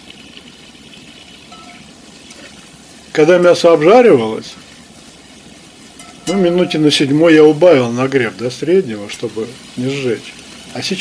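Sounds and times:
meat and onion sizzling in oil: 0:00.0 - 0:11.0.

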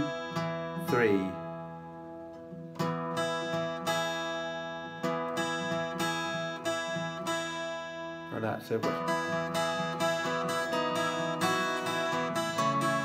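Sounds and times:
fingerpicked twelve-string guitar: 0:00.0 - 0:13.0.

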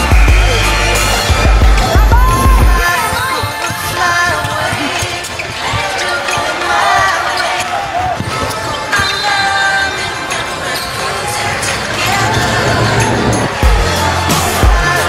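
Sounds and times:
music: 0:00.0 - 0:15.0
voices: 0:00.0 - 0:15.0.

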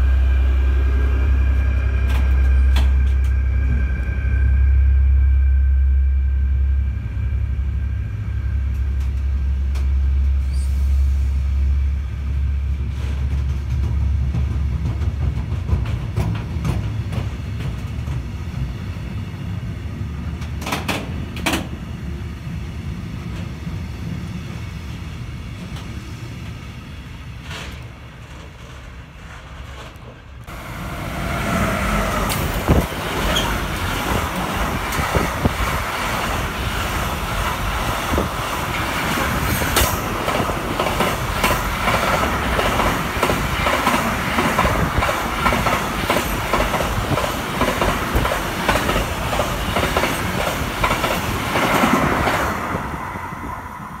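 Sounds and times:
freight train rumbling: 0:00.0 - 0:54.0.

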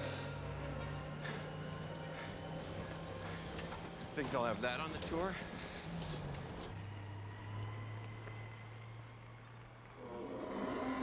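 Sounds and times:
vehicle engine humming: 0:00.0 - 0:10.1.

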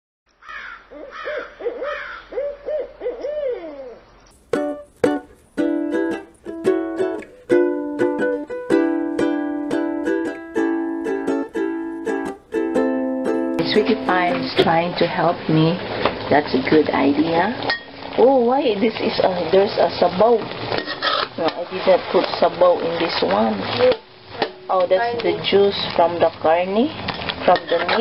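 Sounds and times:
owl hooting: 0:00.4 - 0:04.3
plucked string music: 0:04.3 - 0:18.5, 0:20.4 - 0:26.3.

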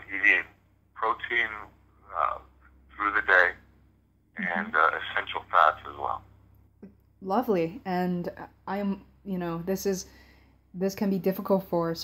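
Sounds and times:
person talking: 0:04.4 - 0:06.2.

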